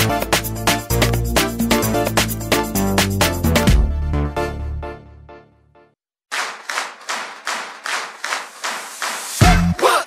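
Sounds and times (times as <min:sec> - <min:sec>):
rhythmic clapping: 0:00.0 - 0:03.7, 0:06.3 - 0:10.0.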